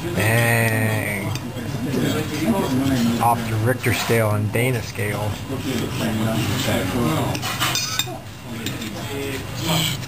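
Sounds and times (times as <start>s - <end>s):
cutlery scraping on plate: 5.7s - 10.0s.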